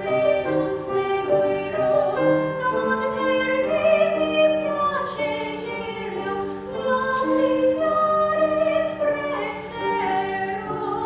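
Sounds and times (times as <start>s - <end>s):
grand piano accompaniment: 0.0s - 11.0s
soprano singing: 0.0s - 11.0s.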